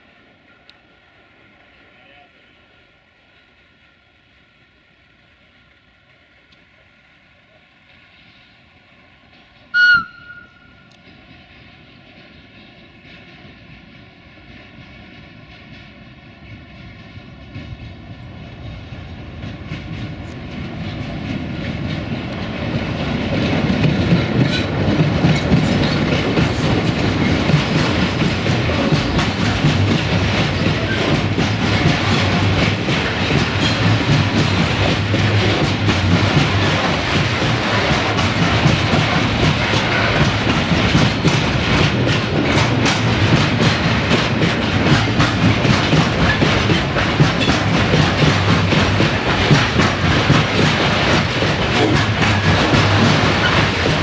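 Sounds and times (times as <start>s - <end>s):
diesel locomotive hauling freight train: 0.0s - 54.0s
train wheels clicking over rail joints: 7.8s - 54.0s.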